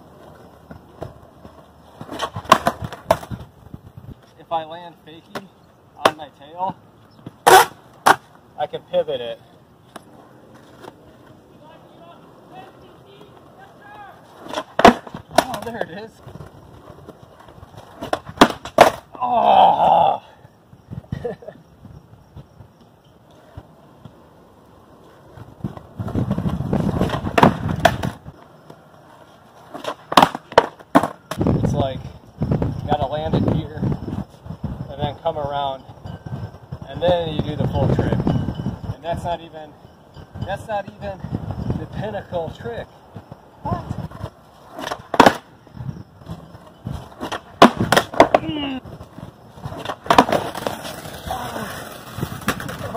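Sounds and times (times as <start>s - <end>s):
skateboard deck clacking: 0.0s - 3.5s, 7.2s - 8.4s, 9.9s - 19.1s, 24.9s - 31.5s, 44.0s - 45.6s, 46.2s - 52.9s
skateboard wheels rolling on concrete: 0.0s - 52.9s.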